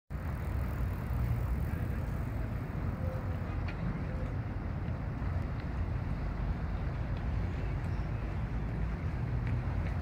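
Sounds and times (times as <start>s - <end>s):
distant city traffic: 0.1s - 10.0s.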